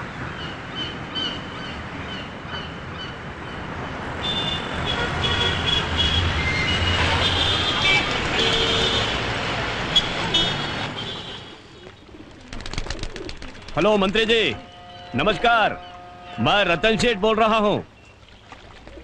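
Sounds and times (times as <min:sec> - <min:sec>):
road traffic noise: 0:00.0 - 0:19.0.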